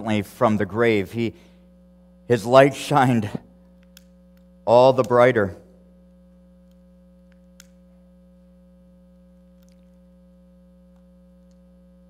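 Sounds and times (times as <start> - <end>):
faint mains hum: 0.0 - 12.0
faint clicks: 3.6 - 4.5, 6.6 - 7.8.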